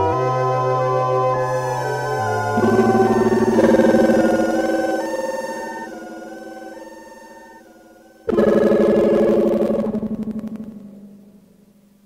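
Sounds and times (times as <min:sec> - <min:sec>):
synthesizer chord with pulsing tremolo: 0:00.0 - 0:11.7.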